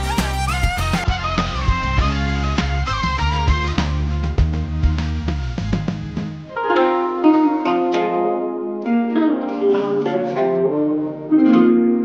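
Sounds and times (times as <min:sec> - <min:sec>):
zither plucked melody: 0:06.5 - 0:12.0.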